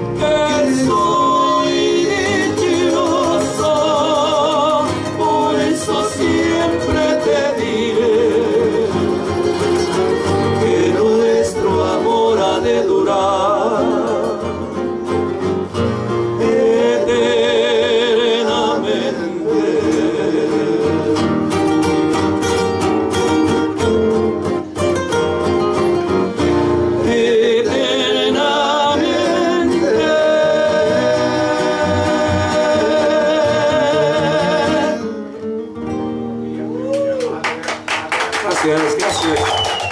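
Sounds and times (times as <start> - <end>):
men singing with vibrato: 0.0 - 14.9, 16.0 - 21.6, 26.8 - 35.2
acoustic guitars strumming: 0.0 - 39.9.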